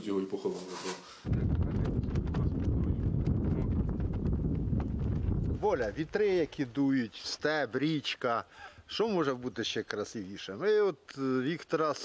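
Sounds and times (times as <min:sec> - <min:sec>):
wind buffeting microphone: 0:01.2 - 0:06.6.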